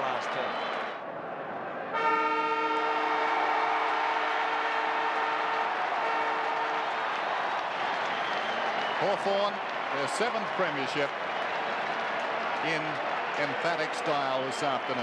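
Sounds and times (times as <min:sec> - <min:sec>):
crowd cheering: 0:00.0 - 0:15.0
siren long steady blast: 0:01.9 - 0:07.0.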